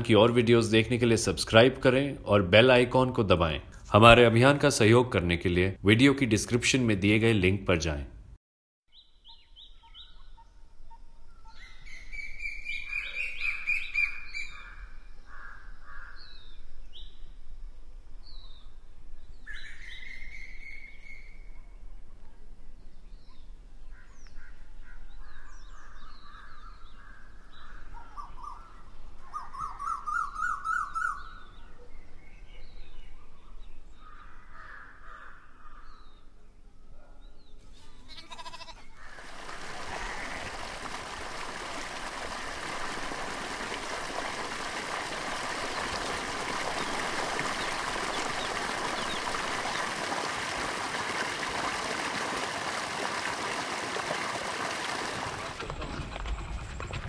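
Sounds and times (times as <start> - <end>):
birds chirping and trilling: 8.9 - 17.4, 18.2 - 40.6, 45.6 - 49.9.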